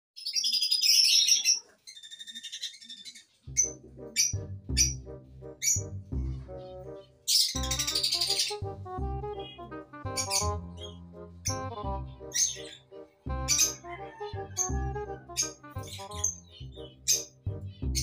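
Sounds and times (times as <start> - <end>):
high bird chirping: 0.2 - 18.0
music with steady beat: 3.7 - 7.0, 7.6 - 16.5.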